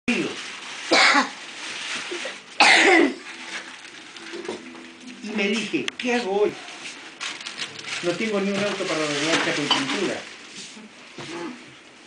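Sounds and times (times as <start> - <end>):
person coughing: 0.9 - 1.4, 2.6 - 3.2.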